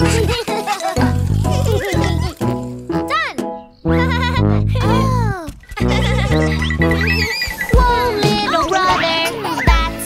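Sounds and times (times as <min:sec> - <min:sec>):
children's cartoon music: 0:00.0 - 0:10.0
sliding wobbling effect tones: 0:05.7 - 0:09.3.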